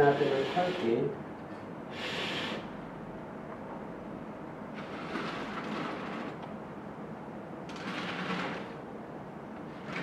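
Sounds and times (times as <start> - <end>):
curtain runners sliding on rail: 4.8 - 6.4, 7.7 - 8.7, 9.7 - 10.0.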